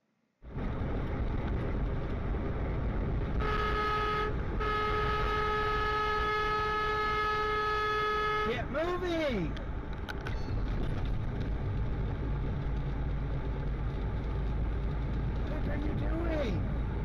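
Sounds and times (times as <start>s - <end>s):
road and cab noise: 0.1s - 17.0s
truck horn blasts: 3.4s - 8.6s.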